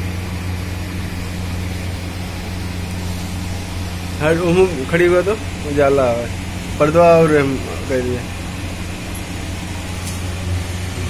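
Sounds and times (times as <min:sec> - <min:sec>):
low hum: 0:00.0 - 0:11.0.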